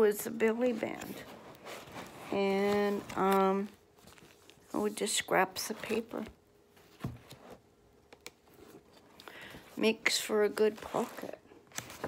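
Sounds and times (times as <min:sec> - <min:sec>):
paper rustling: 0:00.6 - 0:07.4.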